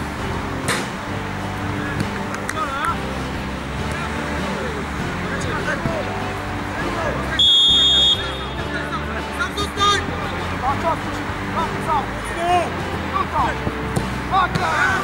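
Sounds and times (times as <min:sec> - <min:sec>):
background music: 0:00.0 - 0:15.0
players shouting: 0:00.1 - 0:15.0
referee's whistle blast: 0:07.4 - 0:08.7.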